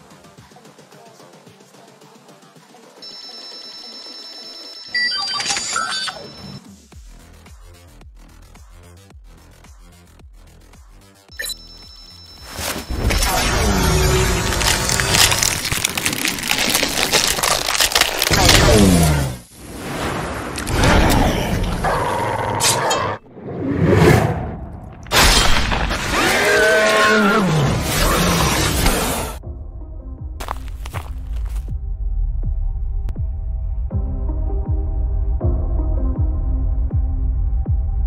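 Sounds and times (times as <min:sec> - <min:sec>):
crackling energy effects: 0:12.6 - 0:21.9
cinematic music: 0:12.6 - 0:23.3, 0:28.1 - 0:38.0
monster roar: 0:13.2 - 0:19.5, 0:20.7 - 0:24.5, 0:25.9 - 0:29.4.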